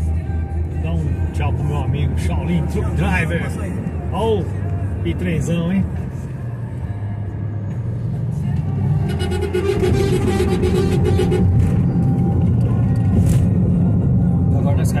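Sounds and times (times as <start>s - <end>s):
car cabin road noise: 0.0s - 15.0s
music with singing voice: 0.0s - 15.0s.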